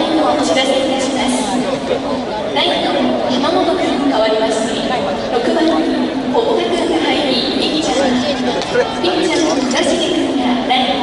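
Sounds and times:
large crowd talking: 0.0s - 11.0s.

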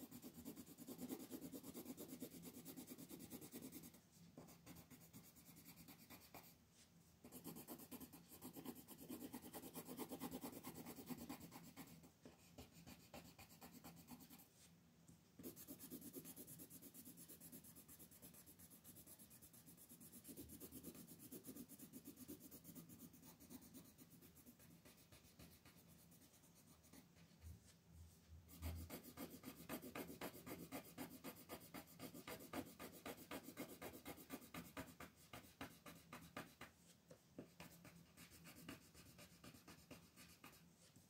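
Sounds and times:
pencil scratching on paper: 0.0s - 6.6s, 7.2s - 14.7s, 15.4s - 27.7s, 28.5s - 41.0s.

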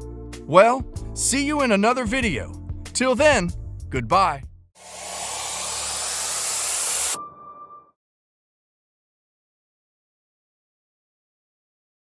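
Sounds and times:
whoosh noise riser: 4.8s - 7.2s.

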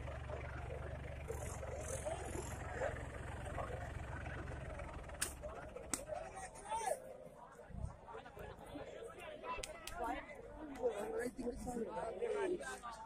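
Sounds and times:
diesel tractor engine running: 0.0s - 6.6s.

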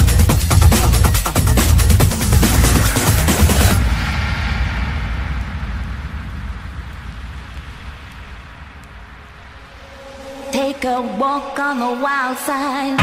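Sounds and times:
low rumble: 1.8s - 12.5s
electronic noise wash with reverb: 2.0s - 13.0s.

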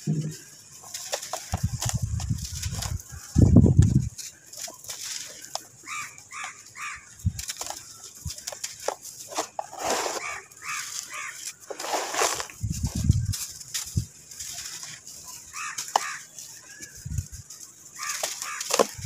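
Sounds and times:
sand crunching by hand: 0.9s - 19.0s
loose sand falling: 3.7s - 19.0s
chickens clucking: 9.3s - 12.6s
heavy low crunches: 11.6s - 14.8s.

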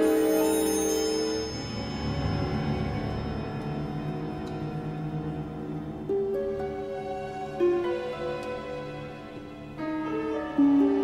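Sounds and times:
orchestra playing slow music: 0.0s - 11.0s.

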